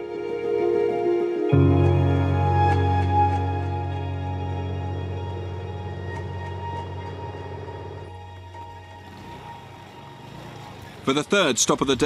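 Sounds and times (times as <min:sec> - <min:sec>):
distant motor scooter engine: 0:05.8 - 0:12.0.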